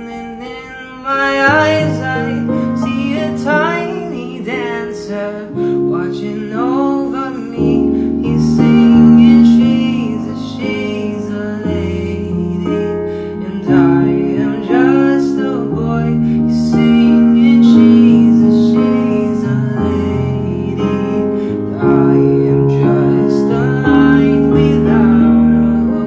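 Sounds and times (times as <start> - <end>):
person singing: 0.0 - 26.0
piano chords: 0.0 - 26.0.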